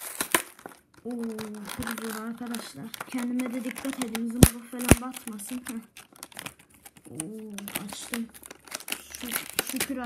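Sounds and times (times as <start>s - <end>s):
plastic blister pack crinkling: 0.0s - 10.0s.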